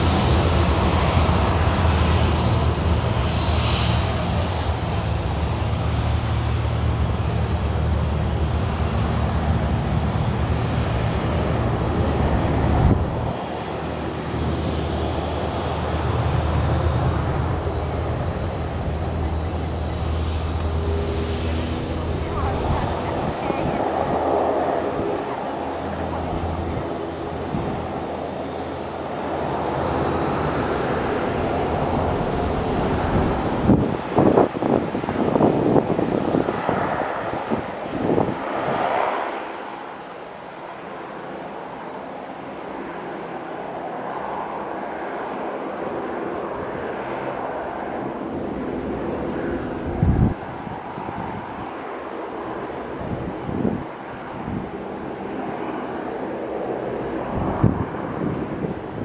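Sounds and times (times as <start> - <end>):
wind buffeting microphone: 0.0 - 39.4, 48.0 - 59.0
jet engines rumbling on takeoff: 0.0 - 59.0.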